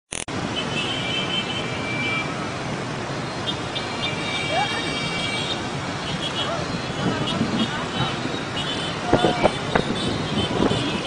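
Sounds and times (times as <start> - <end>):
dense motorbike traffic: 0.1 - 11.0
high-pitched vehicle horns: 3.5 - 11.0.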